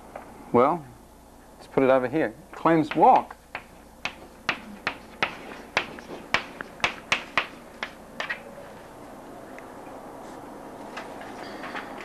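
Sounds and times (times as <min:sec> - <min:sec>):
chalk tapping on chalkboard: 0:02.6 - 0:08.0.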